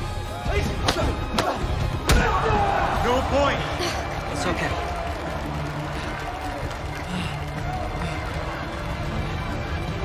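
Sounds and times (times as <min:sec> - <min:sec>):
low steady music: 0:00.0 - 0:10.0.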